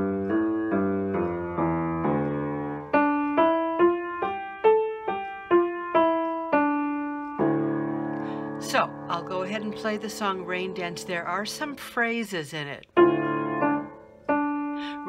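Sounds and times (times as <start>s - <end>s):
out-of-tune piano notes: 0.0s - 12.2s, 12.9s - 15.0s.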